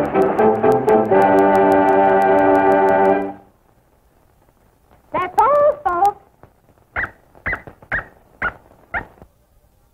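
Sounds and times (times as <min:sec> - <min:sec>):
cartoon dog yipping: 0:07.0 - 0:09.2.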